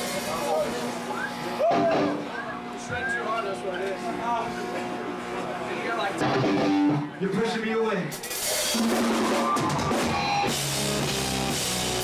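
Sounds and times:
band playing with drums: 0:00.0 - 0:03.1, 0:06.2 - 0:07.1, 0:08.1 - 0:12.0
electric guitars humming through amps: 0:00.0 - 0:07.3, 0:08.1 - 0:12.0
crowd shouting: 0:01.1 - 0:03.7, 0:08.6 - 0:10.4.

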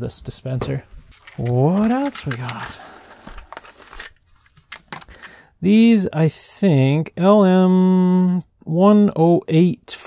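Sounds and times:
paper packaging crinkling: 0:01.1 - 0:05.3.

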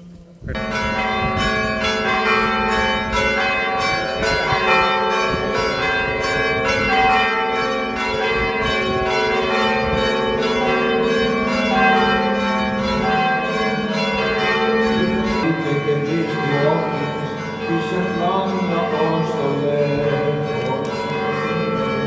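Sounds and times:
church bells ringing: 0:00.5 - 0:22.0.

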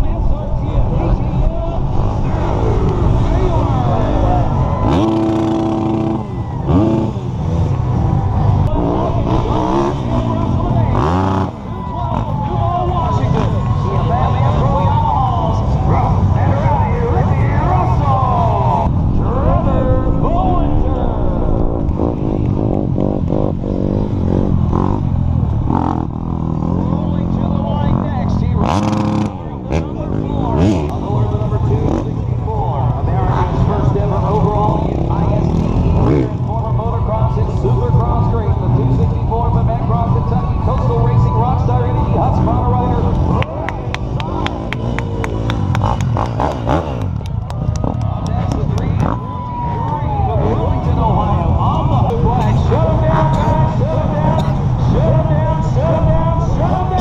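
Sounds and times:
crowd voices: 0:00.0 - 0:57.0
motorcycle engines revving: 0:00.0 - 0:57.0.

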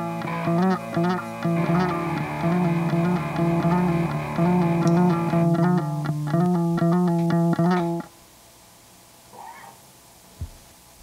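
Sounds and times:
electric guitar and bass rock song: 0:00.0 - 0:08.1.

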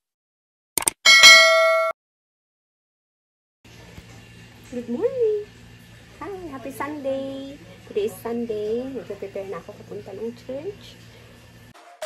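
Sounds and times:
ringing bell notification chime: 0:01.1 - 0:01.9.

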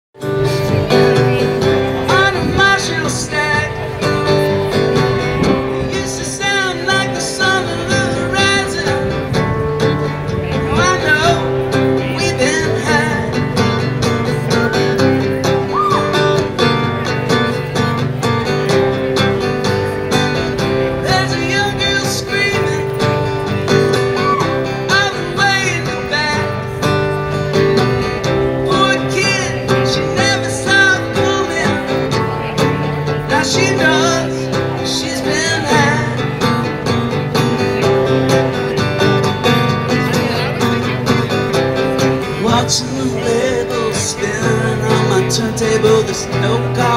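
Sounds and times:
acoustic guitar strumming: 0:00.2 - 0:46.9.

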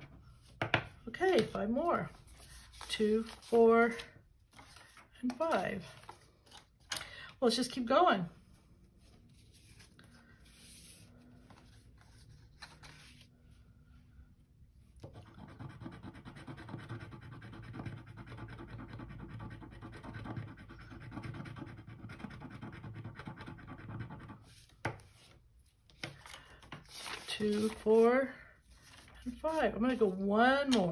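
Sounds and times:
card handling: 0:02.3 - 0:07.1, 0:11.5 - 0:13.2, 0:25.8 - 0:28.0.

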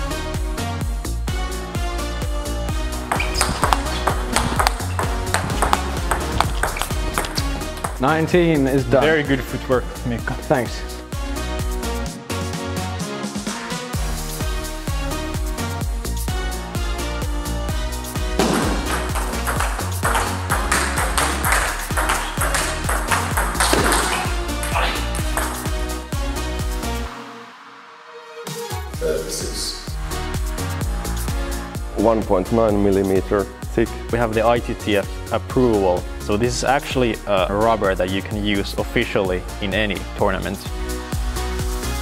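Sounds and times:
background music: 0:00.0 - 0:42.0
electronic music with steady beat: 0:03.0 - 0:08.5, 0:18.4 - 0:26.8
table tennis ball clicking: 0:03.1 - 0:08.0, 0:18.9 - 0:25.6
ball bouncing on table: 0:03.1 - 0:08.1, 0:18.4 - 0:25.8.

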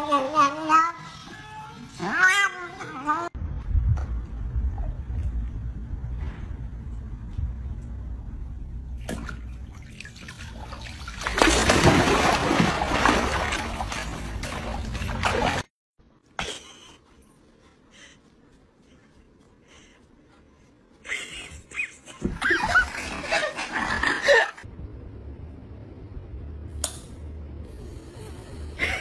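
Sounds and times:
low steady outdoor rumble: 0:02.0 - 0:29.0
dog splashing in pool: 0:09.1 - 0:15.7.

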